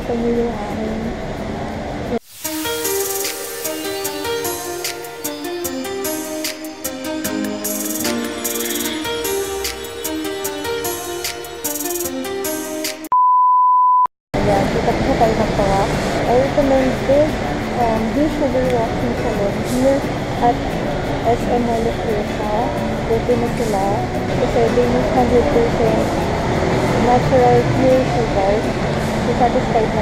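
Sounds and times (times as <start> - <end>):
woman speaking: 0.0 - 2.2, 14.4 - 26.2, 27.0 - 28.7, 29.3 - 30.0
background music: 0.0 - 13.1, 14.4 - 30.0
test-tone beep: 13.1 - 14.1.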